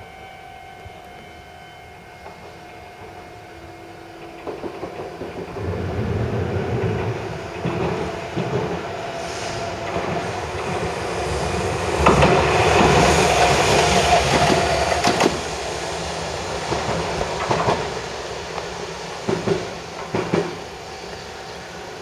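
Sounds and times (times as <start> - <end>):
train rumbling past: 0.0 - 22.0
train whine: 0.0 - 22.0
wheel clacks over rail joints: 11.9 - 15.6, 16.6 - 20.6.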